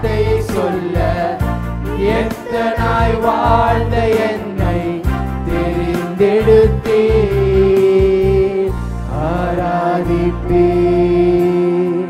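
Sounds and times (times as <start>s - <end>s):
group singing a worship song: 0.0s - 12.0s
low musical accompaniment: 0.0s - 12.0s.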